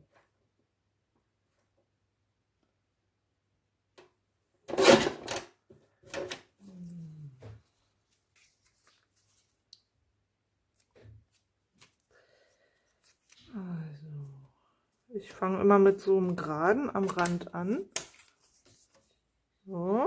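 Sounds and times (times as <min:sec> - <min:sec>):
person humming: 0:06.6 - 0:07.6
paper strips rustling: 0:07.6 - 0:09.9, 0:10.7 - 0:13.6, 0:16.2 - 0:19.2.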